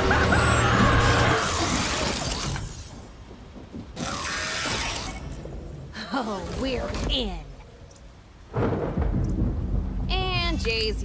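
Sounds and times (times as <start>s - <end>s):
robotic device grinding and ratcheting: 0.0s - 2.9s, 4.0s - 5.5s.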